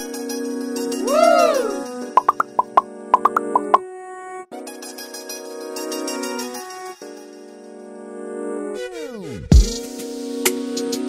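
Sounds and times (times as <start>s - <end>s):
cartoon swoop sound effect: 2.2s - 3.8s
short bright pops: 2.2s - 3.8s
upbeat children's keyboard music: 2.2s - 3.8s.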